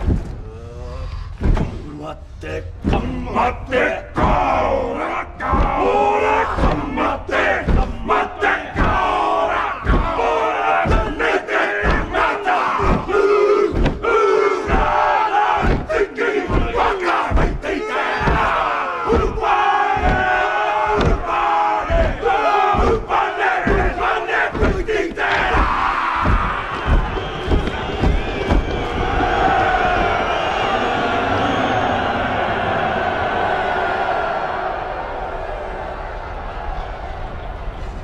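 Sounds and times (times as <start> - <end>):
men chanting in unison: 1.6 - 34.6
feet stamping: 5.4 - 30.8.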